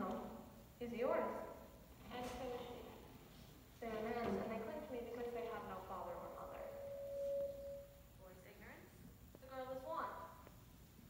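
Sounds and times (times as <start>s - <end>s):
woman speaking: 3.8s - 6.9s, 8.2s - 10.3s
steady ringing tone: 6.4s - 8.2s.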